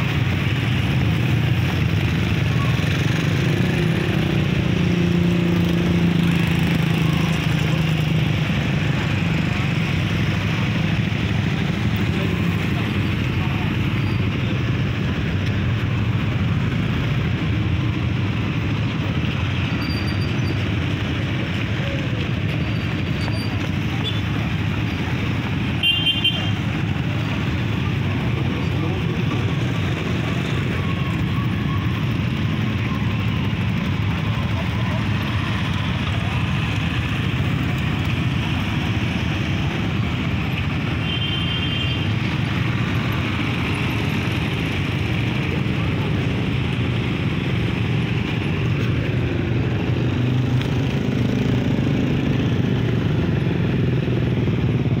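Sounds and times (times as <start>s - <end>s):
crowd talking and calling out: 0.0s - 55.0s
motorcycle engines idling and passing: 0.0s - 55.0s.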